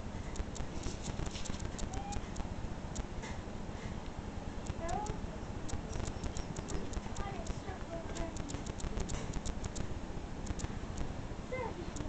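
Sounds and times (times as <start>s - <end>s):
clicks and taps on camera: 0.3s - 3.4s, 4.6s - 11.1s
kitten calls: 1.6s - 2.5s.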